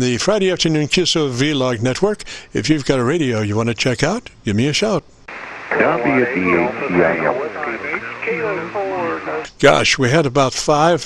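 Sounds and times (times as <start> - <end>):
overlapping voices over radio: 5.3 - 9.5.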